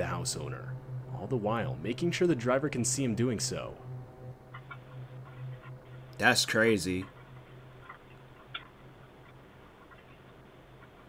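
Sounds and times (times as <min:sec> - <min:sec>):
faint low hum: 0:00.0 - 0:11.0
soft ticks: 0:04.4 - 0:11.0.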